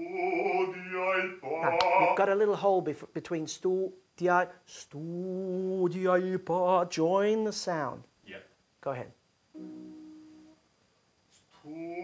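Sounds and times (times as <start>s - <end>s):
piano chord ringing: 9.6s - 10.6s.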